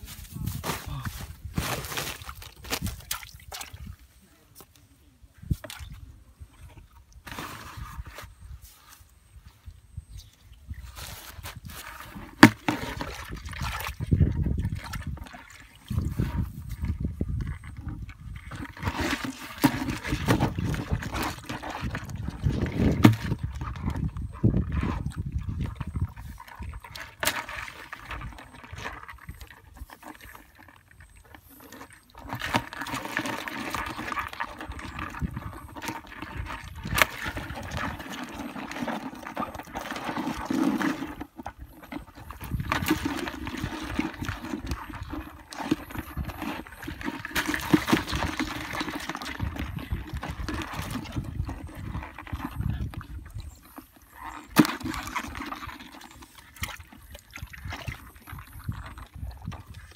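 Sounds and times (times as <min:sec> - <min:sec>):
hands sloshing through mud: 0:00.0 - 0:04.1, 0:10.6 - 0:59.9.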